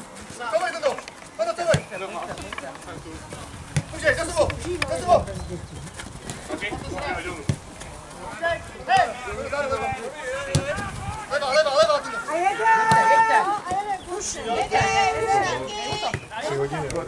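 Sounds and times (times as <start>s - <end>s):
footballers shouting: 0.4s - 5.6s, 6.2s - 17.0s
ball being kicked: 1.6s - 5.0s, 7.4s - 7.9s, 10.4s - 11.0s.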